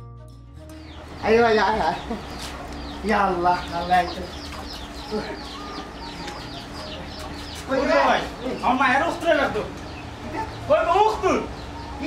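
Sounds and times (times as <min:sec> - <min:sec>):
bird chirping rapidly: 0:00.7 - 0:12.0.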